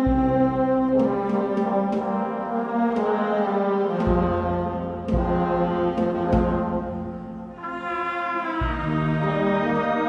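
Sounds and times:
brass band funeral march: 0.0s - 10.0s
drum strikes: 3.9s - 7.7s.

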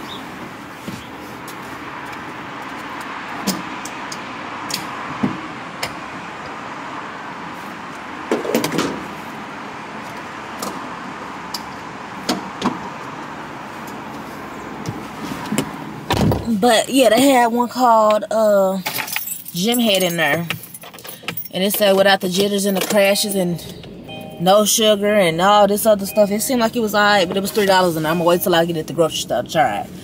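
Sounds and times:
gas station background noise: 0.0s - 30.0s.

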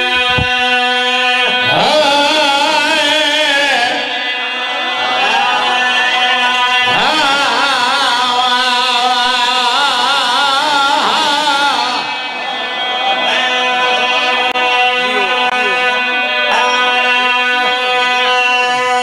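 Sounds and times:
man chanting over loudspeaker: 0.0s - 19.0s.

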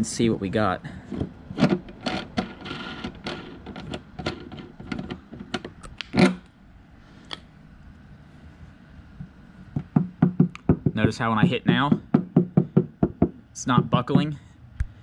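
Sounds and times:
loud knock: 9.7s - 13.9s.

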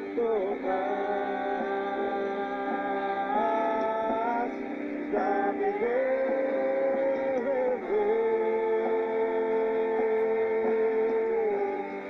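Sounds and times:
band holding a long chord: 0.0s - 12.0s.

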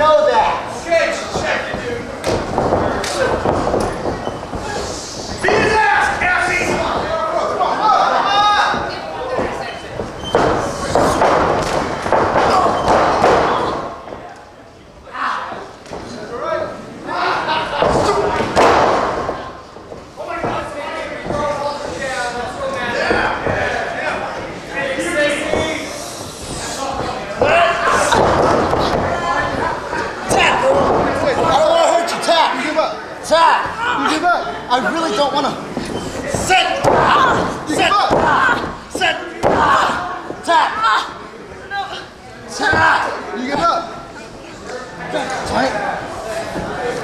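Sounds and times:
crowd voices: 0.0s - 47.0s
people shouting: 4.5s - 9.8s, 36.4s - 43.2s.

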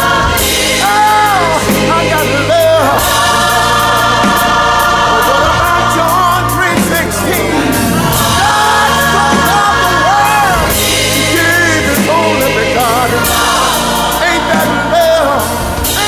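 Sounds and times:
band with bass: 0.0s - 16.0s
choir-like sung vocals: 0.0s - 16.0s.

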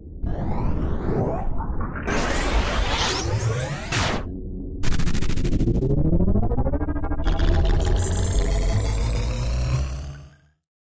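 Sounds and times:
electronic synthesizer music with deep bass: 3.4s - 10.5s.

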